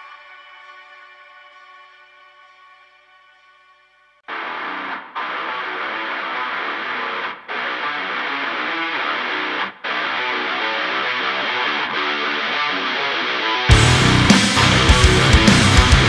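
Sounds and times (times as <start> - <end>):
distorted electric guitar riff: 4.3 - 16.0.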